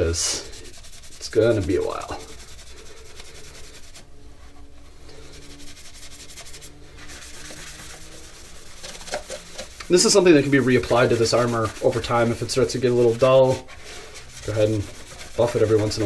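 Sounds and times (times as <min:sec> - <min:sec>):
cloth buffing plastic: 0:00.0 - 0:16.0.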